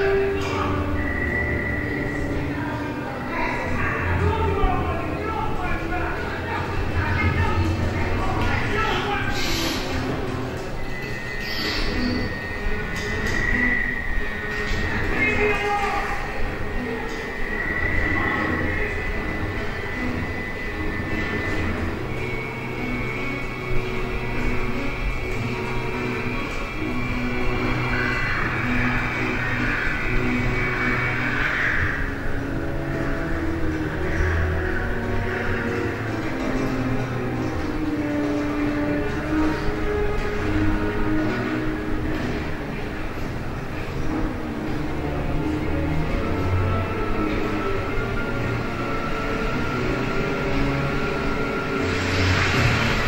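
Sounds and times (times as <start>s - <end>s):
film soundtrack music: 0.0s - 53.0s
rushing noise: 0.0s - 53.0s
steady rumble: 2.3s - 9.4s.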